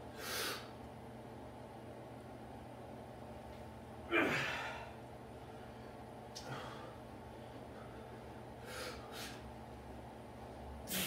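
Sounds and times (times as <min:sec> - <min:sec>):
man's forceful gasping breath: 0:07.8 - 0:09.4.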